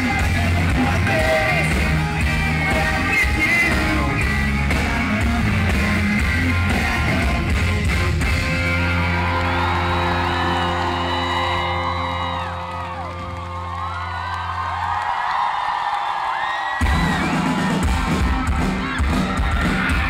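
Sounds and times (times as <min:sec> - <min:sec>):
crowd whooping and cheering: 0:08.4 - 0:20.0.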